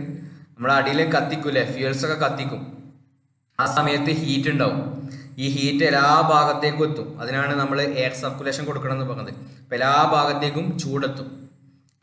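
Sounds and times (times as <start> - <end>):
man talking: 0.0 - 2.7, 3.6 - 11.4.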